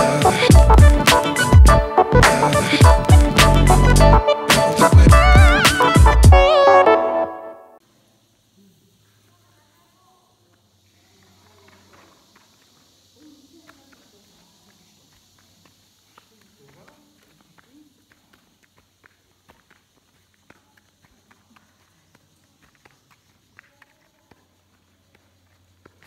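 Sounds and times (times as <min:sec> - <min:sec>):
footsteps on sandy floor: 0:13.7 - 0:26.0.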